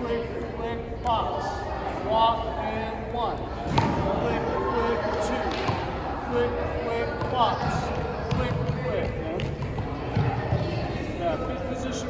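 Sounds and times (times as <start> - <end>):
voices talking in echoing hall: 0.0 - 12.0.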